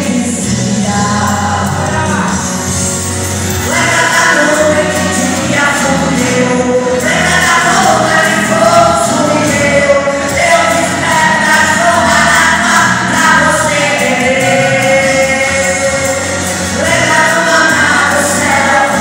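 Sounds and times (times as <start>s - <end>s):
man singing into microphone: 0.0s - 2.8s, 3.6s - 19.0s
musical backing: 0.0s - 19.0s.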